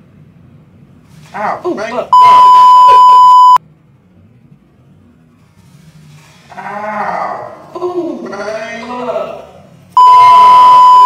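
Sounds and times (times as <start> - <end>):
high censor bleep: 2.1 - 3.6, 10.0 - 11.0
voice: 6.5 - 9.6.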